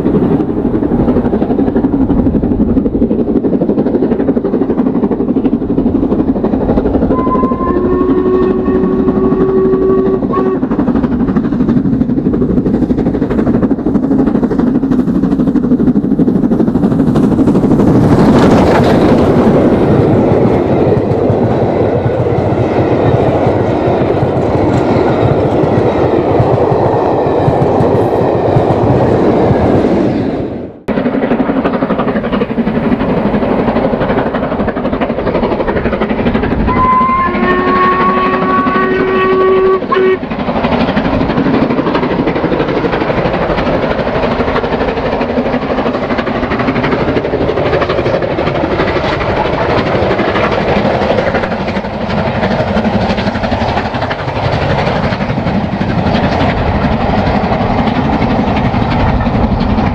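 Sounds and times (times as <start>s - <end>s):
distant steam locomotive working: 0.0s - 59.9s
train coaches rushing past: 0.0s - 59.9s
steam whistle: 7.1s - 10.8s, 36.7s - 40.2s
wheels clacking over rail joints: 30.9s - 59.9s.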